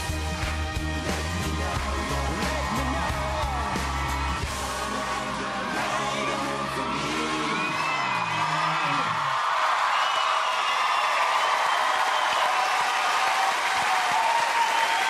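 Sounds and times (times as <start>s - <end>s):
studio audience applauding: 0.0s - 15.0s.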